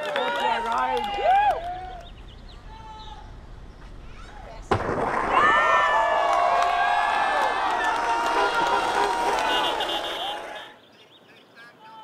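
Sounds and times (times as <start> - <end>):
people yelling and cheering: 0.0 - 3.4, 5.2 - 10.8
skateboard slamming on street: 4.0 - 5.8.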